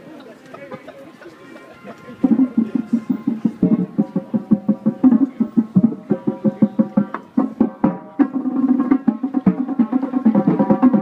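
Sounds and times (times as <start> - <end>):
marching drumline drums: 2.0 - 11.0.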